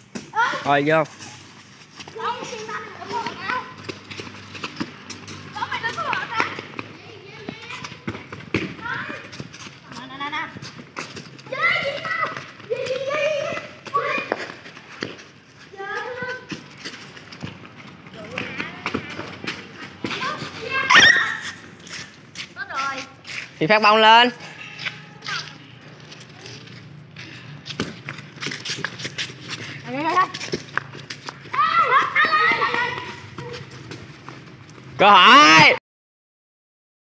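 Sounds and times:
children shouting: 0:11.4 - 0:14.5, 0:20.1 - 0:21.6, 0:31.4 - 0:33.8.

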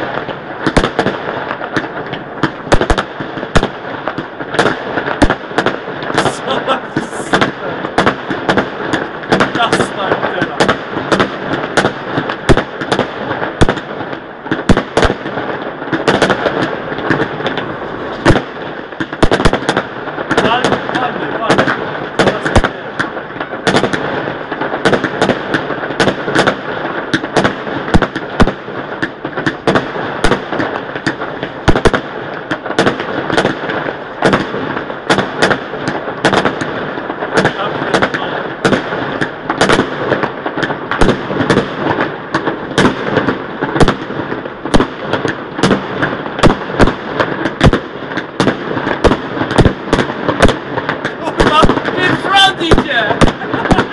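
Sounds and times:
firecrackers crackling: 0:00.0 - 0:53.9
fireworks banging: 0:00.0 - 0:53.9.

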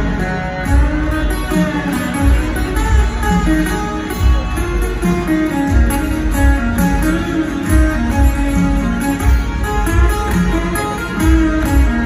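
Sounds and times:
live rock band playing ballad: 0:00.0 - 0:12.0
picked guitar melody: 0:00.0 - 0:12.0.

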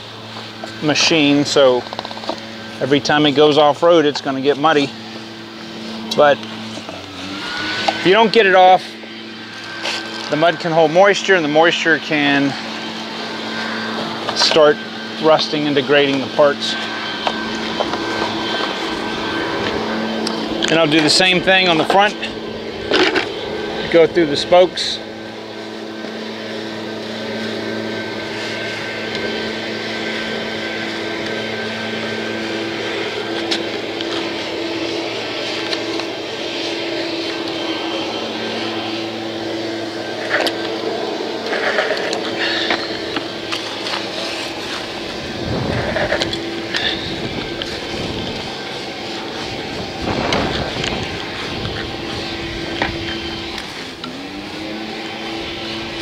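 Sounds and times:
steady motor hum: 0:00.0 - 0:56.0
brush scrubbing wheel spokes: 0:41.4 - 0:48.1.

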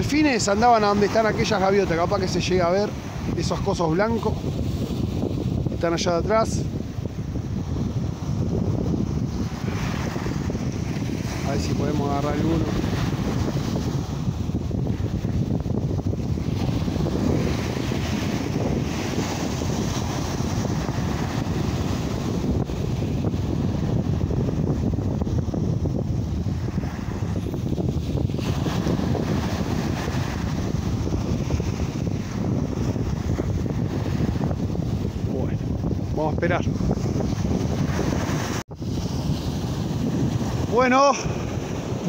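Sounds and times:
small waves washing on shore: 0:00.0 - 0:42.0
wind buffeting microphone: 0:00.0 - 0:42.0.

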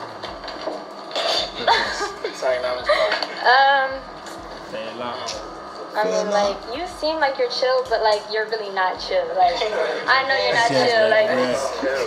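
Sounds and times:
people's voices in a room: 0:00.0 - 0:12.0.

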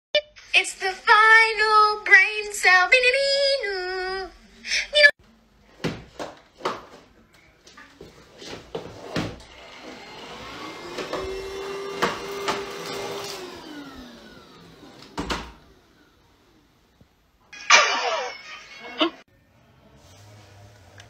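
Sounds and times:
vacuum cleaner motor: 0:09.4 - 0:16.6.

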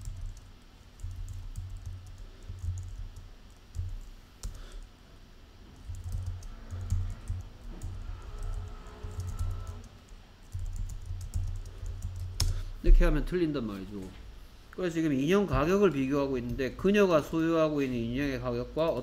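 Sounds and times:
keyboard typing clicks: 0:00.0 - 0:04.9, 0:05.8 - 0:12.6.

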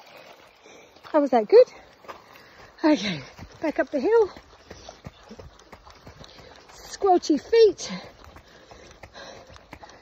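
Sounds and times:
footsteps in squelching shoes: 0:00.9 - 0:10.0.

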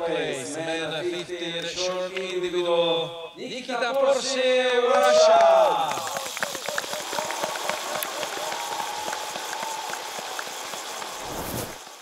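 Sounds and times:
dense crackling noise: 0:06.1 - 0:12.0
short low whoosh: 0:11.2 - 0:11.8.

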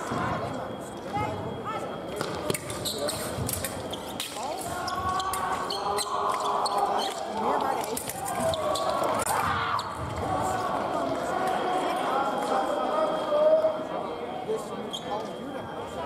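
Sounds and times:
voices echoing in a hall: 0:00.0 - 0:16.0.

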